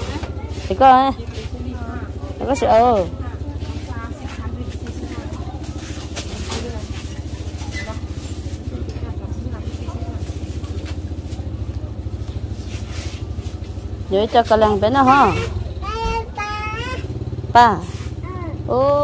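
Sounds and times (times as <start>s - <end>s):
engine idling: 0.0s - 19.0s
faint talk: 0.0s - 19.0s.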